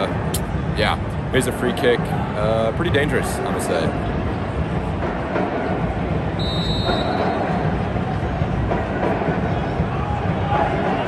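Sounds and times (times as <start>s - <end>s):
stadium crowd noise: 0.0s - 11.0s
high-pitched whistle blast: 6.4s - 7.4s.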